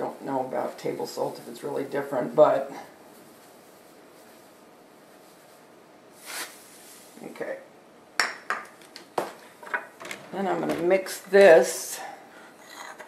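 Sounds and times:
containers set down on tiled counter: 8.2s - 9.9s.

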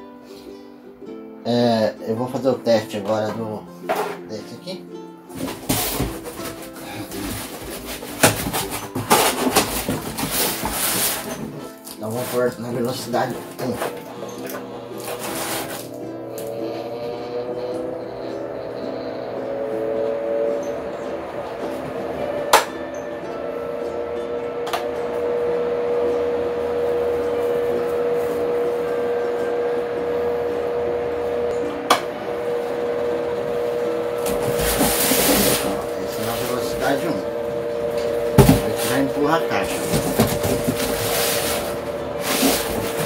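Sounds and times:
pedestal fan humming: 0.0s - 43.0s.

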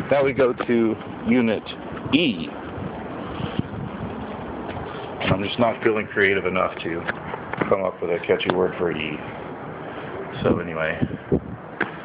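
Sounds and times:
street traffic: 0.0s - 12.0s
wind buffeting microphone: 0.0s - 12.0s.

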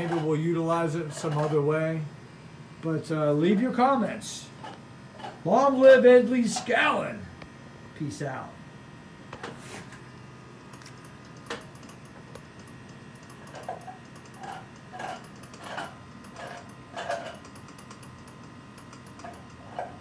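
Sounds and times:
faint steady hum: 0.0s - 20.0s
generator light ticks: 17.4s - 19.6s.

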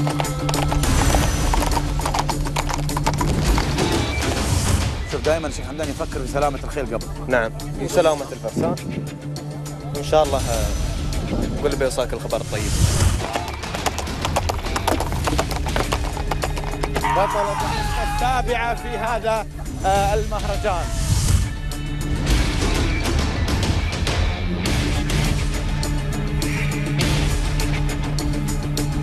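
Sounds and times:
horses hooves clip-clopping: 0.0s - 4.5s, 13.1s - 18.4s
music playing: 0.0s - 29.0s.

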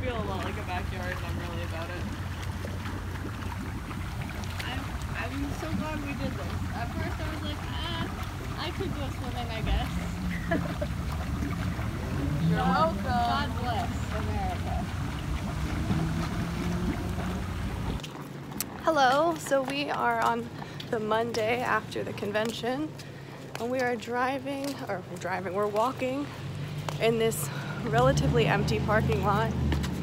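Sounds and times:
hot tub jets churning water: 0.0s - 30.0s.

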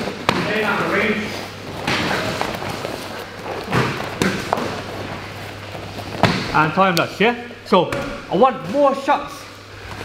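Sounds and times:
punches and kicks thumping: 3.6s - 4.8s, 6.1s - 6.6s.

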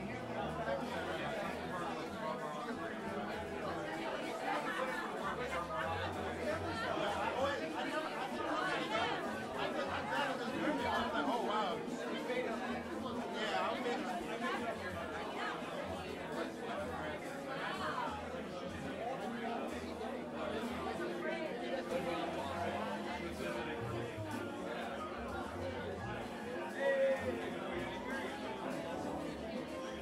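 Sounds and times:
crowd chatter: 0.0s - 30.0s.

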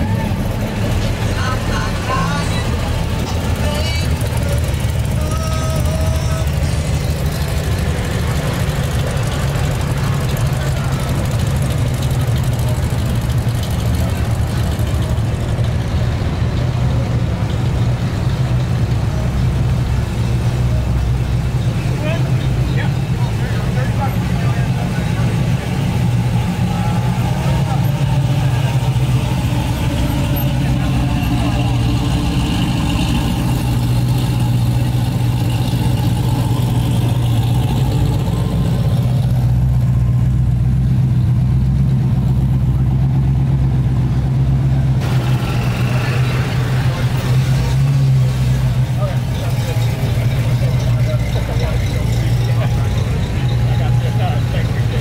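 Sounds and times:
car engines idling deep rumble: 0.0s - 55.0s.

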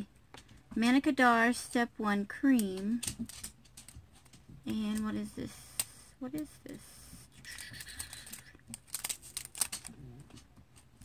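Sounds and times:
packaging clicks and crinkles: 7.4s - 11.0s.

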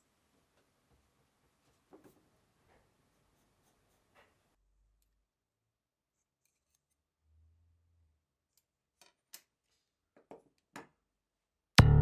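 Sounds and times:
pencil scratching on paper: 1.7s - 4.6s.

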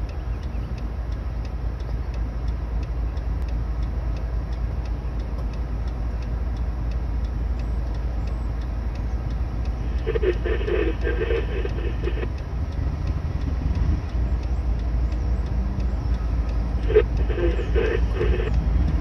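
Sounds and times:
faint regular ticking: 0.0s - 19.0s
locomotive low rumble: 0.0s - 19.0s.

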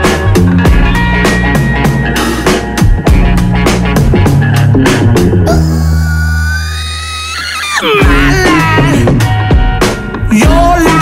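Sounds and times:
person singing: 7.7s - 9.3s, 10.2s - 11.0s
pop song playing: 7.8s - 11.0s.

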